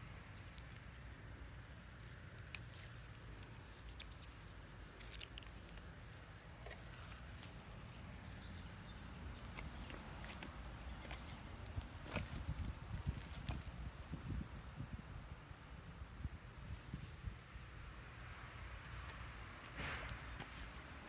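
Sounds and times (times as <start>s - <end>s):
rustling of vines: 0.0s - 21.0s.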